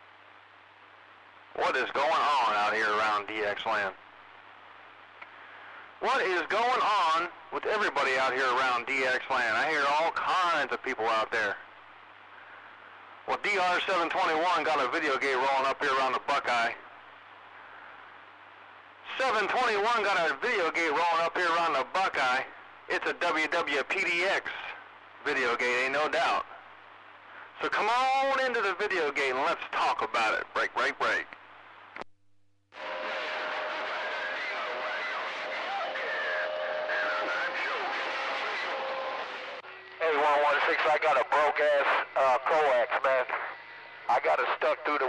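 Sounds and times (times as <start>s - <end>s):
faint steady hiss: 0.0s - 45.0s
low radio hum: 0.0s - 45.0s
radio static: 1.6s - 4.0s, 32.8s - 45.0s.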